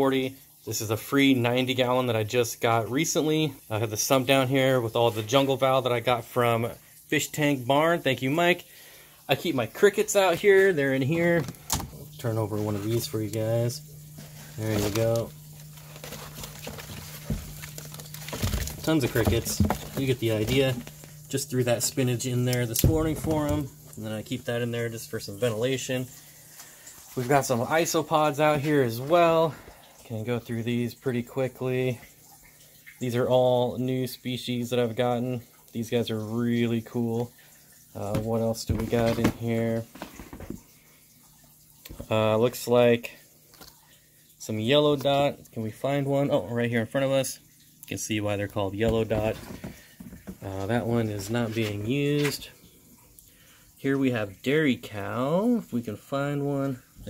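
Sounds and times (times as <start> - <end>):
faint low hum: 7.6 - 41.1
egg cartons scraping in plastic tub: 11.2 - 21.0
plastic drawer knocks and rustles: 18.3 - 20.0, 22.8 - 23.6.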